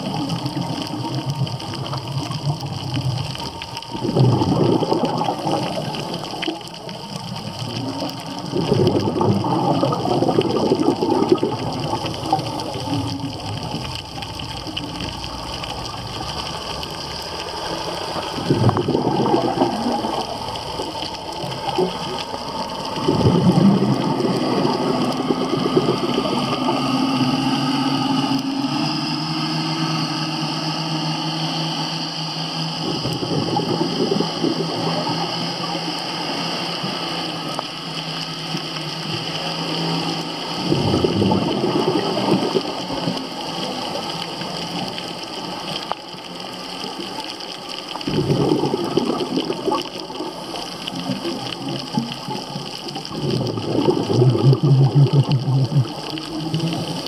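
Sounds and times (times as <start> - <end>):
exhaled bubbles underwater: 0.0 - 57.0.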